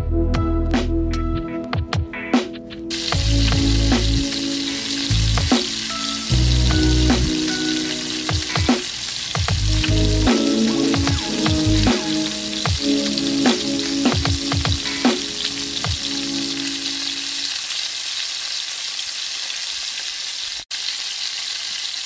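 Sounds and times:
deep-frying sizzling hiss: 2.9 - 22.0
oil crackling and popping: 2.9 - 22.0.

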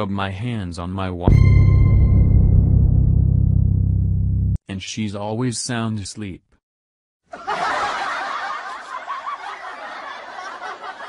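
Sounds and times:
audience laughter: 7.3 - 11.0.

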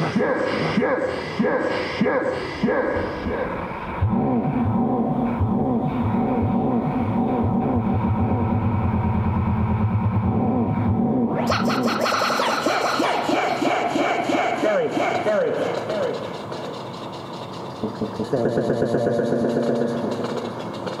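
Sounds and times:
synthesizer pulses and swoops: 0.0 - 21.0
low synth bass: 3.9 - 12.0, 17.9 - 20.2.

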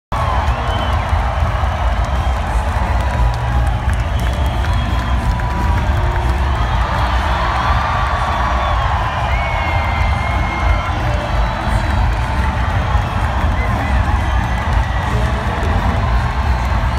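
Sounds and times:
crowd cheering and shouting: 0.1 - 16.9
high whoops: 0.2 - 16.9
music over public address: 0.2 - 16.9.

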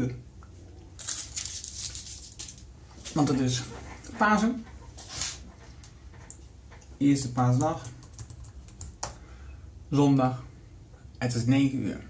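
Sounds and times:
computer keyboard clicks: 7.4 - 9.2.

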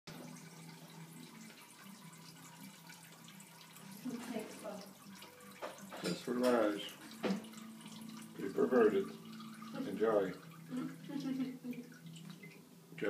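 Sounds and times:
cat urine trickling into water: 0.1 - 13.0.

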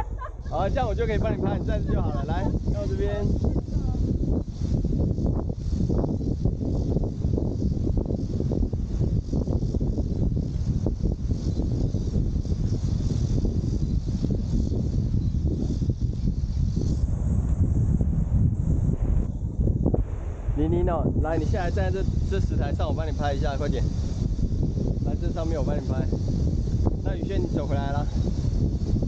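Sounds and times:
wind buffeting microphone: 0.0 - 29.0.

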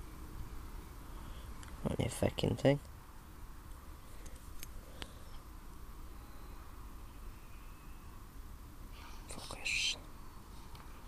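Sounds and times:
low steady rumble: 0.0 - 11.0
whispered hissing breath: 8.9 - 10.7.

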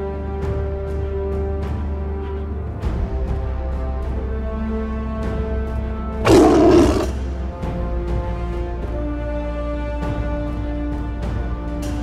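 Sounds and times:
background music: 0.0 - 12.0
growling roar: 6.2 - 7.2.

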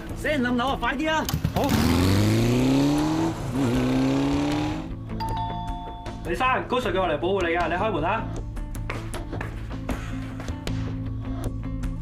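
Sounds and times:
motorcycle engine accelerating: 1.3 - 5.0.

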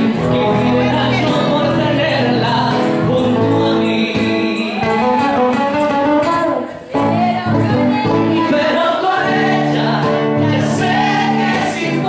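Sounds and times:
live band with guitars: 0.0 - 12.0.

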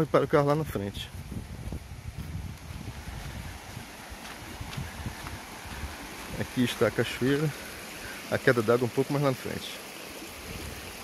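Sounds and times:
wind buffeting microphone: 0.6 - 6.6, 10.3 - 11.0
footsteps on cobblestones: 1.6 - 5.8.

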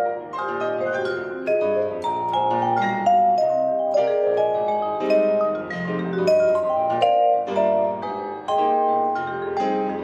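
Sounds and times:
low piano notes: 0.0 - 10.0
vibraphone notes: 0.0 - 10.0.

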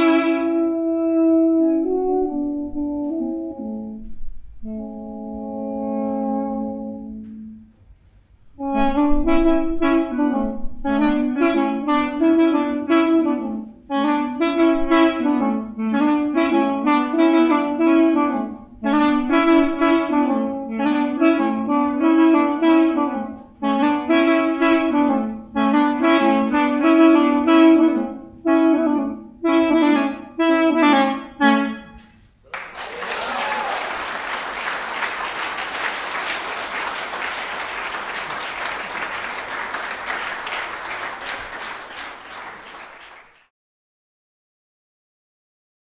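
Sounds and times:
wooden wind instruments duet: 0.0 - 43.4
audience applause: 32.5 - 43.5.

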